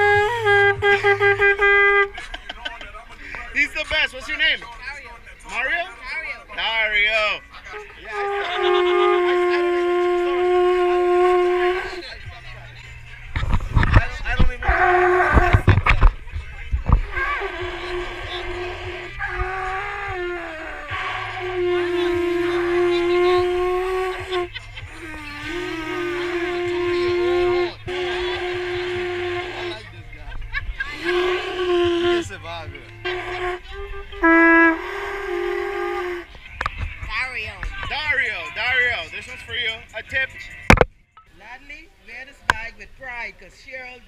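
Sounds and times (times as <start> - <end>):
conch shell trumpet blasts: 0.0 - 2.2, 8.1 - 12.0, 14.6 - 15.7, 17.0 - 24.5, 25.1 - 29.9, 31.0 - 32.3, 33.0 - 36.3
wind or handling noise rumbling: 13.3 - 22.2.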